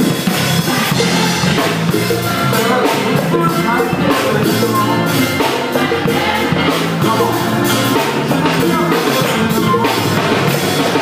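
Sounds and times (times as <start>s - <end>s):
church band music: 0.0s - 11.0s
drum kit playing: 0.0s - 11.0s.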